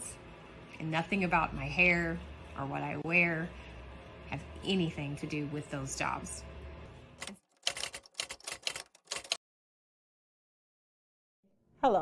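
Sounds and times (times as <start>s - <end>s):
typewriter keys clacking: 7.2s - 9.4s.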